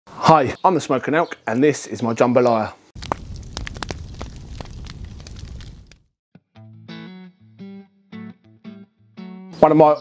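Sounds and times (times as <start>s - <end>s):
flames rushing: 3.0s - 6.1s
fire crackling: 3.0s - 6.2s.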